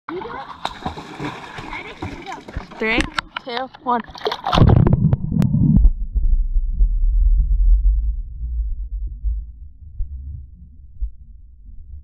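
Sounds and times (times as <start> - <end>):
pool water splashing: 0.1 - 4.8.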